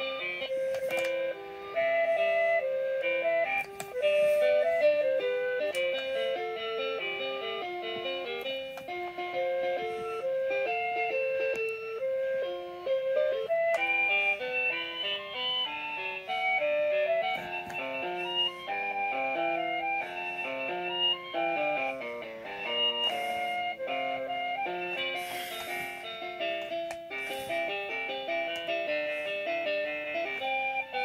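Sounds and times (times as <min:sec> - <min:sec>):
toy playing electronic melody: 0:00.0 - 0:31.0.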